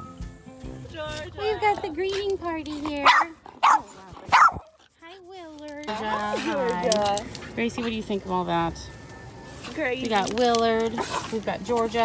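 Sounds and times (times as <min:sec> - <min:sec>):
dog barking: 0:03.0 - 0:04.7.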